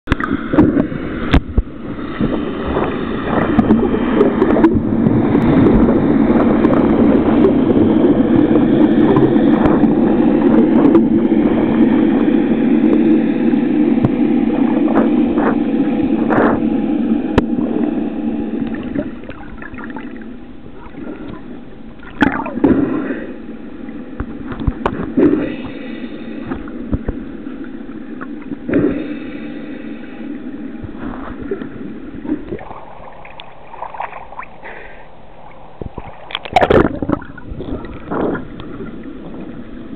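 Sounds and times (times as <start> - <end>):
water rushing and sloshing: 0.0 - 39.9
faint underwater clicks: 0.1 - 1.7, 30.8 - 39.6.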